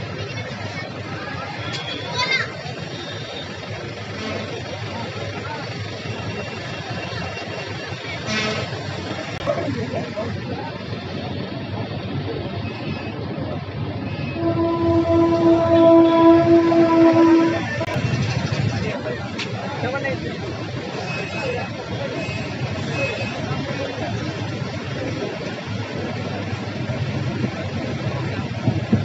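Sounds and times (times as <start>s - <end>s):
steady traffic noise: 0.0s - 29.0s
train horn long note: 14.3s - 18.0s.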